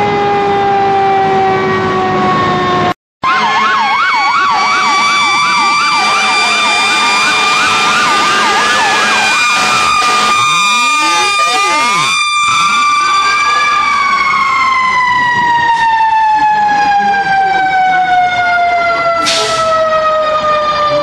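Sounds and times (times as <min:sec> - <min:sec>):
siren wail: 0:00.0 - 0:21.0
siren yelp: 0:00.0 - 0:21.0
steady high siren tone: 0:00.0 - 0:21.0.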